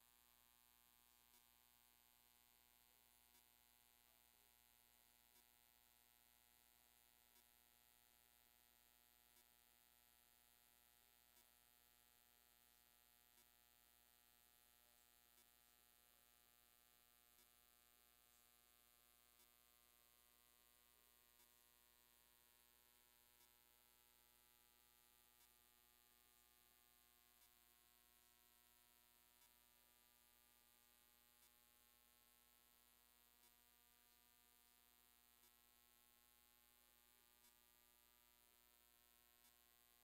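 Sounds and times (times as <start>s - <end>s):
faint electrical hum: 0.0s - 40.0s
faint tick: 9.3s - 9.5s, 11.3s - 11.5s, 25.4s - 25.6s.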